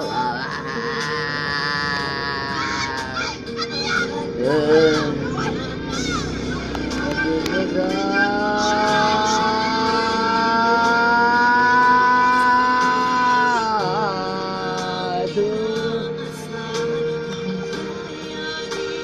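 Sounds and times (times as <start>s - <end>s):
person singing: 0.0s - 3.6s, 4.2s - 5.9s, 6.7s - 19.0s.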